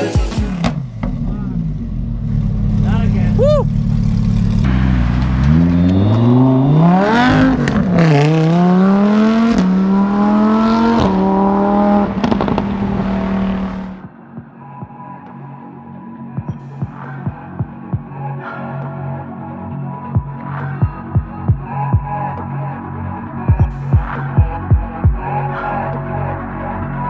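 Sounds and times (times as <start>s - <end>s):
car engine accelerating hard: 0.9s - 14.0s.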